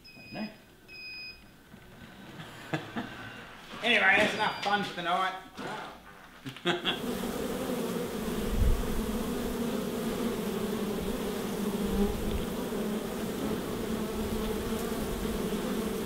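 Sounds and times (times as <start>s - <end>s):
honey bees buzzing: 6.8s - 16.0s.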